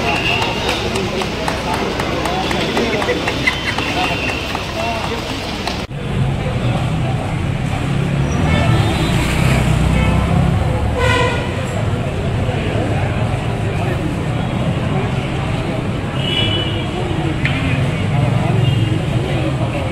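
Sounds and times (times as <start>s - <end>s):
crowd chatter: 0.0s - 19.9s
traffic rumble: 0.0s - 19.9s
vehicle horn toot: 11.0s - 11.6s.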